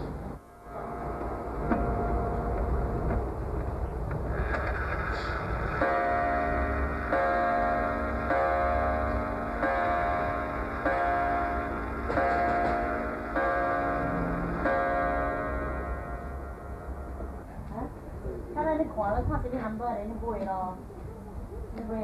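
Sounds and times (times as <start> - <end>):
clock striking a gong: 0.6 - 3.2, 5.8 - 17.4.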